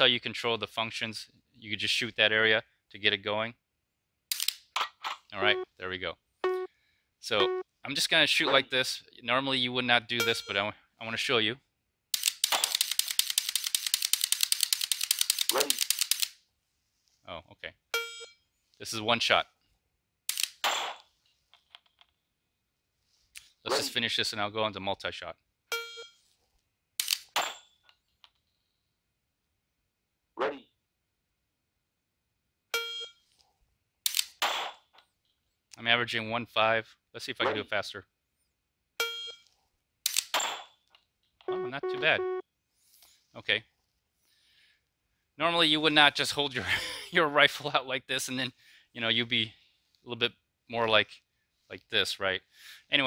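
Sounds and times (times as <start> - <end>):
electronic start beep: 5.4 - 5.7, 6.4 - 6.7, 7.4 - 7.6, 41.5 - 42.4
rapid trigger clicks: 12.2 - 16.3.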